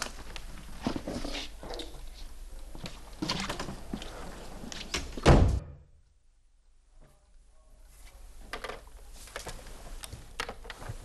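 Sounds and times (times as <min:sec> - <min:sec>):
door shutting with heavy thud: 0:05.1 - 0:05.9.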